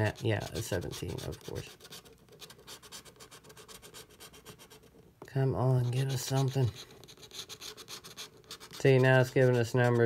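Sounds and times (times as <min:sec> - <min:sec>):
scratch-off ticket being scratched: 0:00.0 - 0:04.9, 0:05.6 - 0:10.0.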